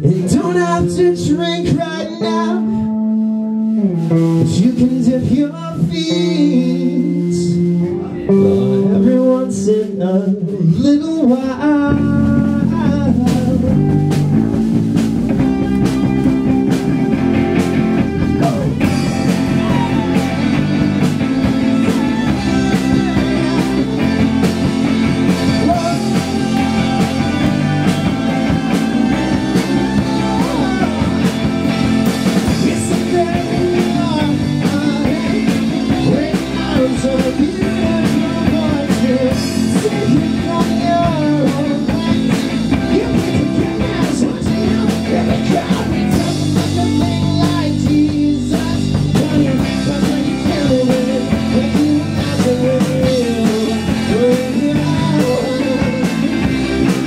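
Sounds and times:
live rock band playing: 0.0s - 57.0s
wavering lead melody: 13.8s - 41.4s.

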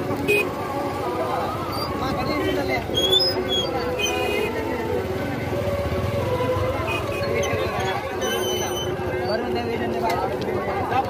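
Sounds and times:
marching crowd voices: 0.0s - 11.0s.

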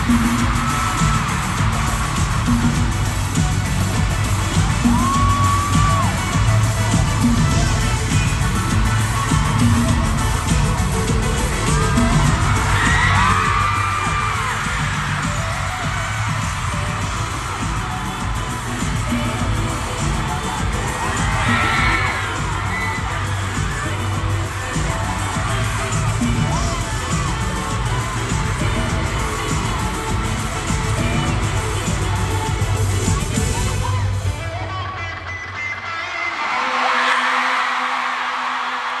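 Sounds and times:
crowd screaming and whooping: 0.0s - 39.0s.

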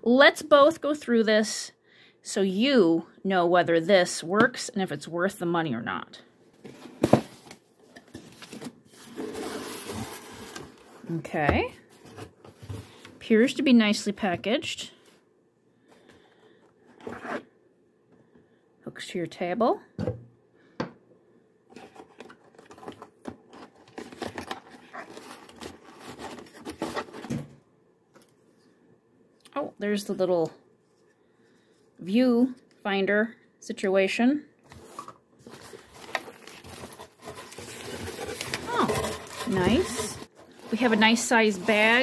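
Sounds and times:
cardboard scraping and rubbing: 8.2s - 11.0s, 23.6s - 27.4s, 34.8s - 42.0s.

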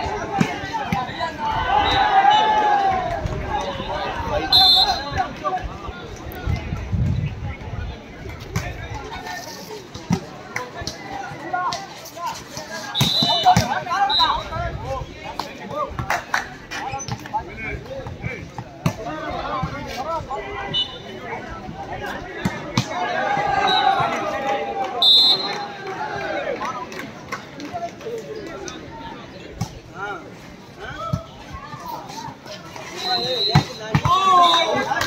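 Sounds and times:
people shouting and calling: 0.0s - 5.9s, 10.6s - 15.0s, 17.4s - 26.8s, 30.0s - 35.0s
short high whistle blasts: 33.0s - 33.8s.

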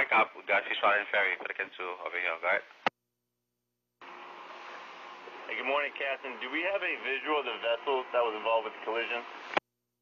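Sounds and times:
radio static hiss: 0.0s - 2.9s, 4.0s - 9.6s.

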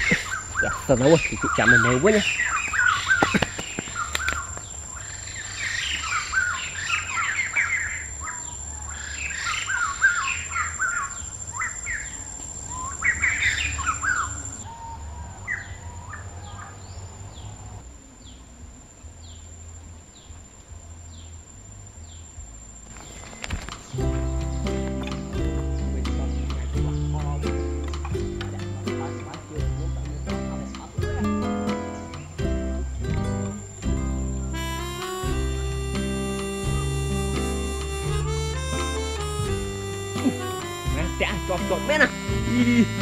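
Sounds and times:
birds chirping: 0.0s - 43.0s
plucked guitar music: 23.9s - 43.0s.

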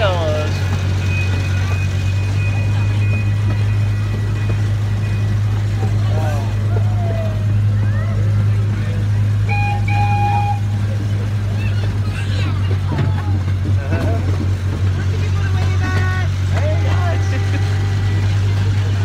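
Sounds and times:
ride train humming: 0.0s - 19.0s
voices of riders: 0.0s - 19.0s.

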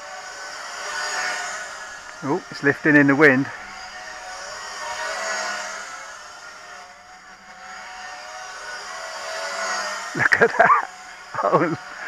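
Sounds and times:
model plane motors buzzing: 0.0s - 12.0s.

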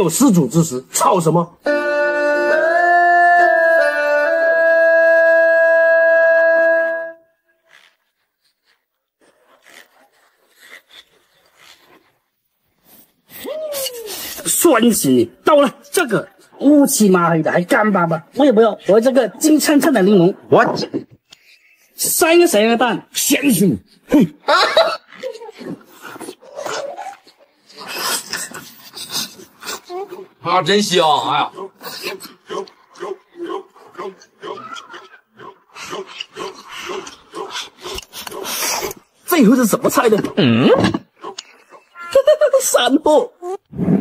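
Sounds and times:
closed-mouth hums: 1.6s - 8.2s
wind instrument long note: 1.7s - 7.3s
man chewing with wet mouth sounds: 7.7s - 14.3s, 25.5s - 30.4s, 31.6s - 39.2s.

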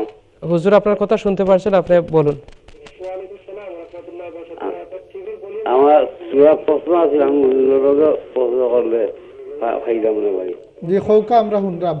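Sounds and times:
person speaking over telephone: 2.9s - 10.6s.

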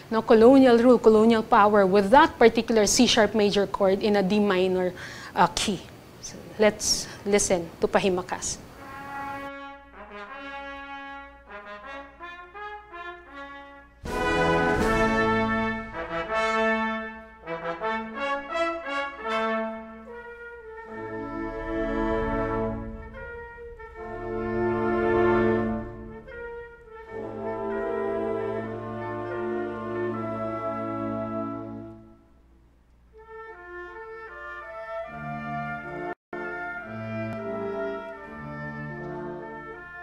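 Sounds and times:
symphonic band funeral march: 8.7s - 32.1s, 33.2s - 40.0s.

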